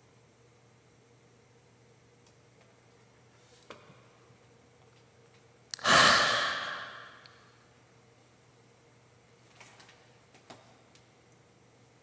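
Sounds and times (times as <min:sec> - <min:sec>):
man sighing: 0:05.8 - 0:07.4.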